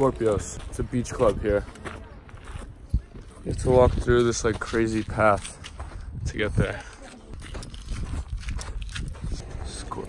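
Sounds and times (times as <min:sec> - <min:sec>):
footsteps on gravel: 0:00.0 - 0:10.0
wind on microphone: 0:05.8 - 0:10.0.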